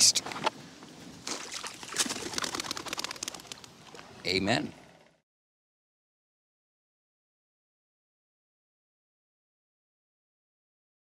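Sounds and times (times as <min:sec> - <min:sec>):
bird wings flapping: 0:01.8 - 0:04.0.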